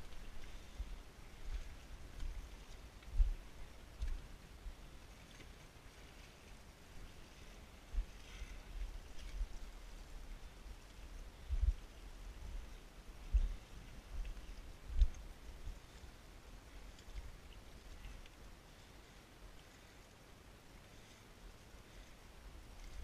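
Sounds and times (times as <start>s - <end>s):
wind rumbling on microphone: 0.0s - 19.0s, 21.5s - 23.0s.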